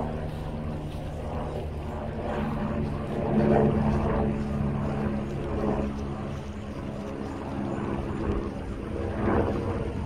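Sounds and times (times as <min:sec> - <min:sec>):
helicopter flying overhead: 0:00.0 - 0:10.0.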